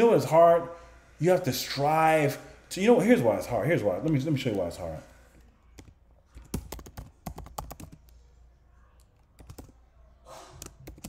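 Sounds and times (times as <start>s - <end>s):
computer keyboard typing: 5.8s - 8.2s, 9.1s - 9.8s, 10.6s - 11.0s
short breath: 10.2s - 10.8s.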